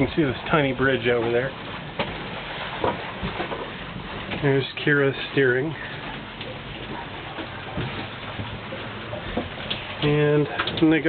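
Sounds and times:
water rushing: 0:00.0 - 0:11.0.

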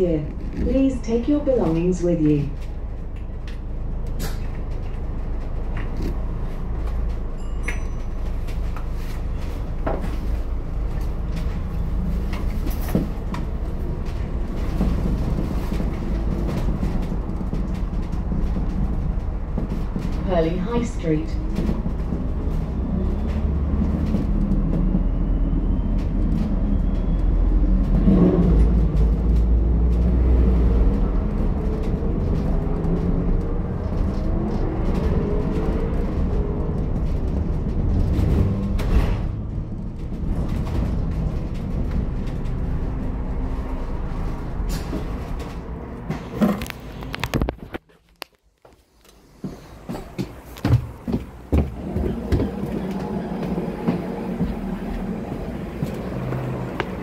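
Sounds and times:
bus interior low rumble: 0:00.0 - 0:57.0.

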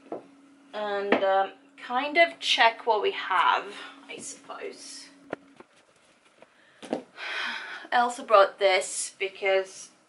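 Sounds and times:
breathy exhale: 0:06.6 - 0:07.9.

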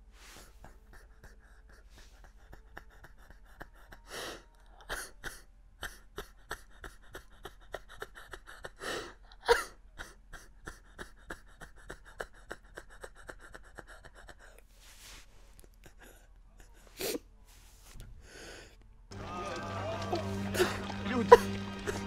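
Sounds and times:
gasping breaths and sniffles: 0:00.0 - 0:18.9
man crying: 0:00.7 - 0:14.5, 0:19.2 - 0:22.0.

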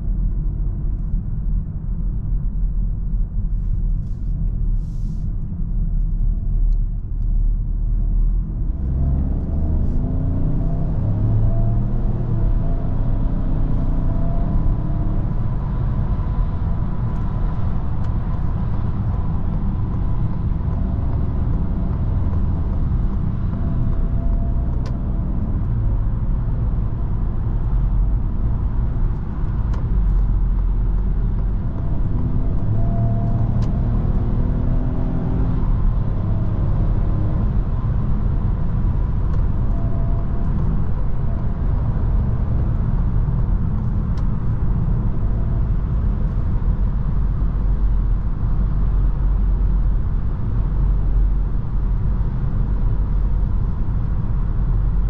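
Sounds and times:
faint engine drone: 0:00.0 - 0:55.0
tyre road and wind noise: 0:00.0 - 0:55.0.

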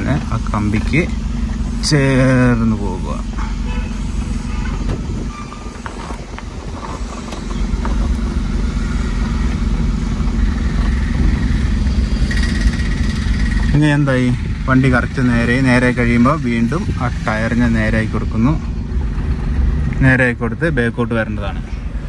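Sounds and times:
car engine running at low revs: 0:00.0 - 0:22.0.

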